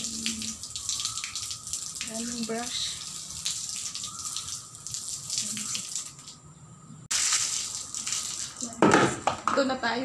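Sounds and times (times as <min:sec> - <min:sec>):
water splashing on tiled floor: 0:00.0 - 0:06.4, 0:07.1 - 0:09.6.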